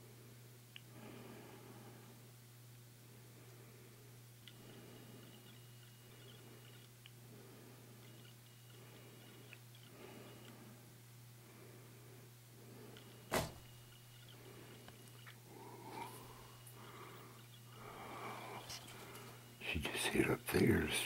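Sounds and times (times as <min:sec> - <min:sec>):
faint high whine: 0:00.0 - 0:21.0
low steady hum: 0:00.0 - 0:21.0
small clicks: 0:08.0 - 0:10.6.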